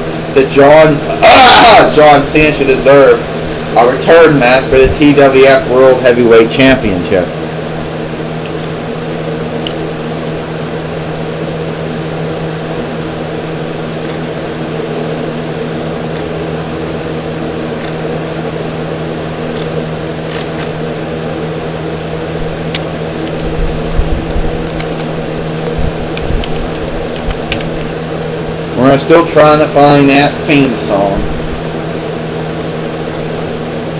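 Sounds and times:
steady mechanical hum: 0.0s - 33.9s
low thumps: 23.3s - 28.0s.

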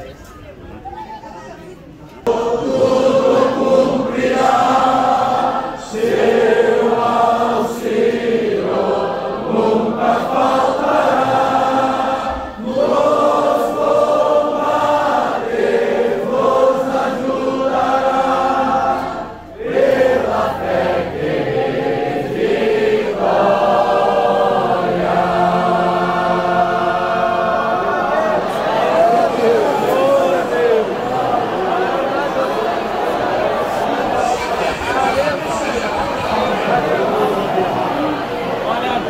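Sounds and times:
group singing a hymn: 2.2s - 39.0s.

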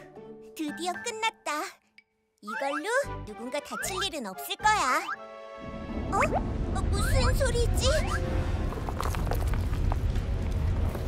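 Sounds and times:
deep continuous rumble: 6.4s - 11.0s
pebbles falling: 8.6s - 11.0s.

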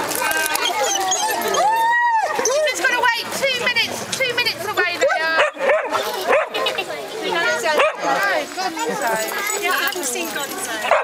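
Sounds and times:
dogs whining and yipping: 0.3s - 2.7s.

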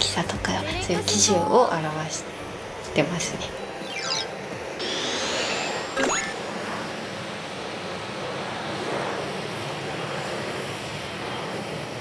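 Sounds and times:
jet engine rushing: 2.4s - 12.0s
short rising whoosh: 3.8s - 7.2s.

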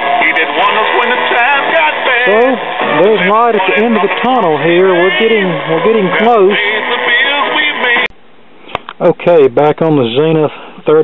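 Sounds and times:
person talking loudly: 2.2s - 6.7s.

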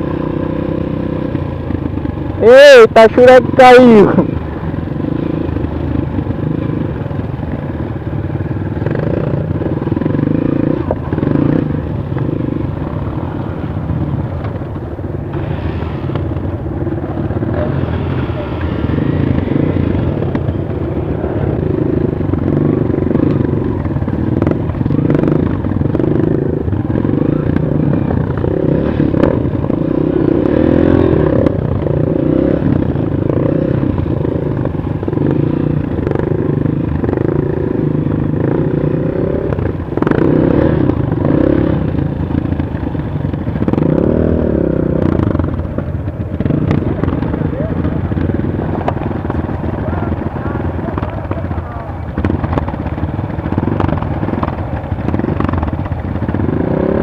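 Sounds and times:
motorbike engine at low revs: 0.0s - 57.0s.

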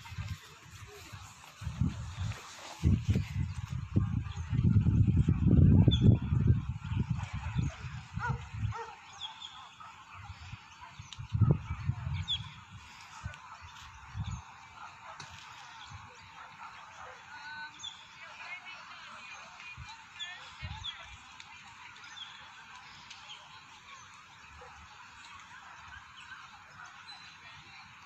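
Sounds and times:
low rumble on microphone: 0.0s - 8.8s.

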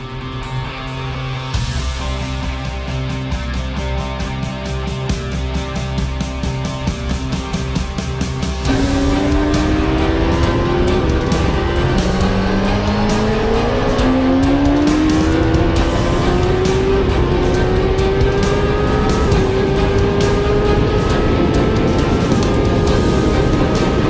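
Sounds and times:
background music: 0.0s - 24.0s
motorcycle engine revving: 0.0s - 24.0s.

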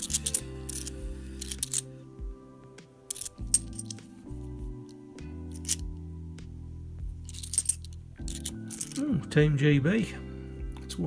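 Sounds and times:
coins clinking: 0.0s - 2.0s, 3.1s - 5.8s, 7.2s - 9.1s
background music low notes: 0.0s - 11.0s.

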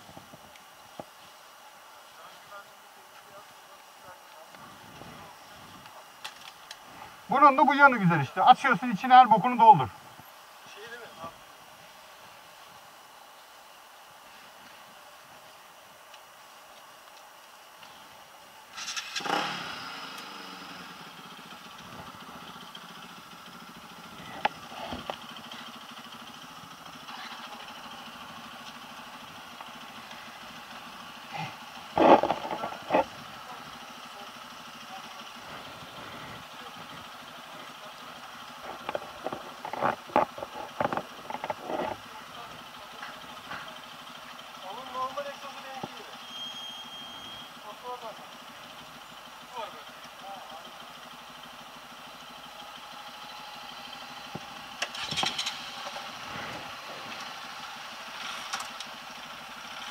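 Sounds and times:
scooter engine starting and idling: 18.7s - 59.9s.

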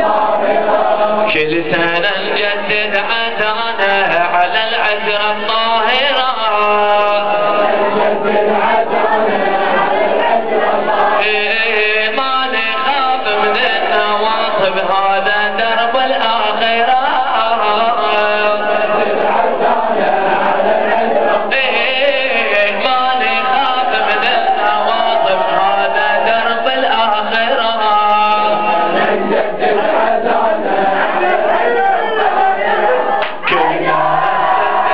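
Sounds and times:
leading voice chanting: 0.0s - 34.9s
men chanting in unison: 0.0s - 34.9s.

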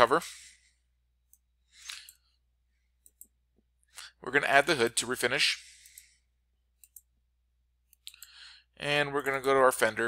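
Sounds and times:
faint computer mouse clicks: 6.8s - 7.1s, 7.9s - 8.4s.

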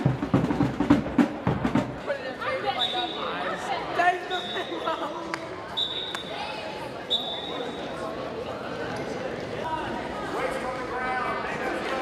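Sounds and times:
voices echoing in a hall: 1.9s - 12.0s.

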